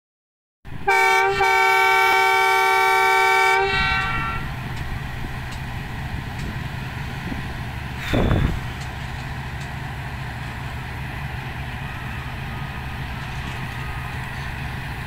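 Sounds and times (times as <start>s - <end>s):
locomotive engine rumble: 0.7s - 15.0s
locomotive horn blasts: 0.8s - 4.5s.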